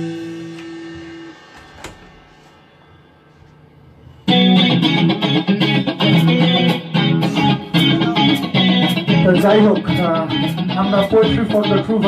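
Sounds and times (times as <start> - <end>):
rock band with distorted guitars: 0.0 - 2.7, 4.2 - 12.0.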